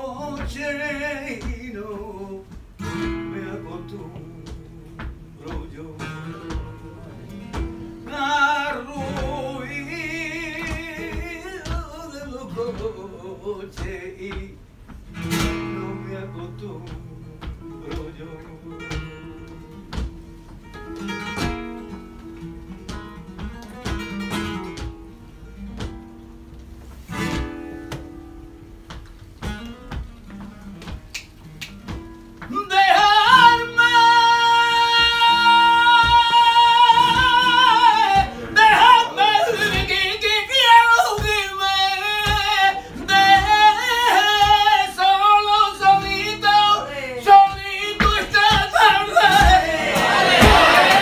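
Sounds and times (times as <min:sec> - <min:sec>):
flamenco guitar playing: 0:00.0 - 0:51.0
hand claps: 0:00.0 - 0:51.0.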